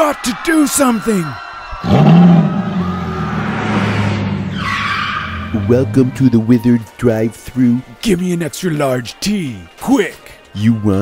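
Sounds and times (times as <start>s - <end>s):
tyre screech: 1.8s - 6.2s.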